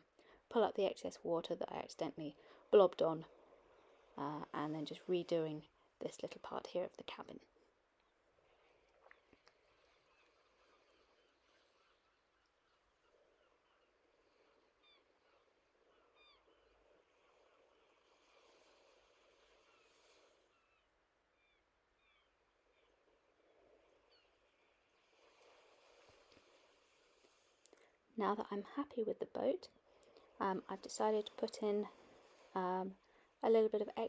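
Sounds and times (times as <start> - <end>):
distant bird chirps: 9.0 - 17.6, 19.4 - 25.1.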